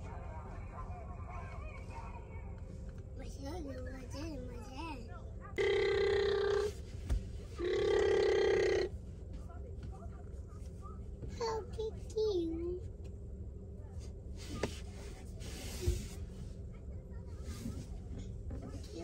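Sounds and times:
car horn honking: 7.6s - 8.9s.

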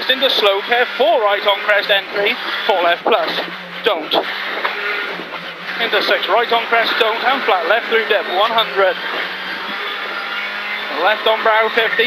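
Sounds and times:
car engine under load: 0.0s - 12.0s.

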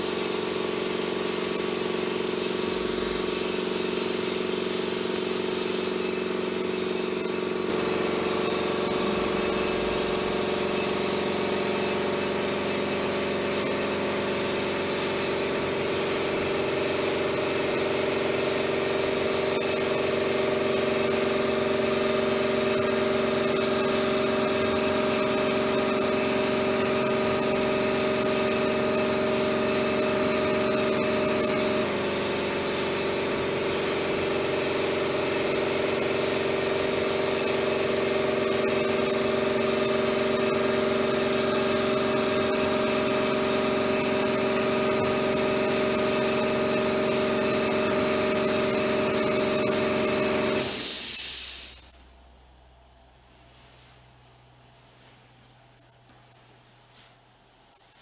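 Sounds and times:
engine-like drone of held tones: 6.2s - 15.6s, 17.2s - 50.8s.

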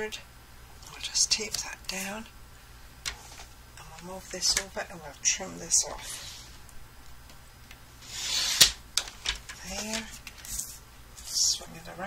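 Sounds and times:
paper trimmer blade sweep: 8.0s - 8.7s.

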